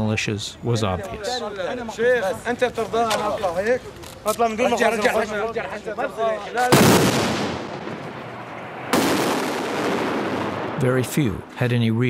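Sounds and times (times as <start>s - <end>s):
gunshot blasts: 6.7s - 8.2s, 8.9s - 11.0s.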